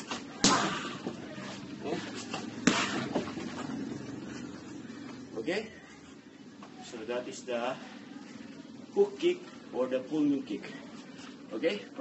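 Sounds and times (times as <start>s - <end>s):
kicks slapping punching dummy: 0.0s - 1.2s, 2.6s - 3.4s.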